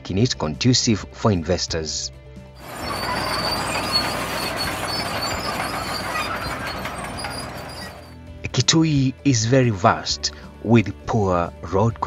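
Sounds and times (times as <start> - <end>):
crawler loader running: 2.6 - 8.2
tracks squeaking: 2.6 - 8.2.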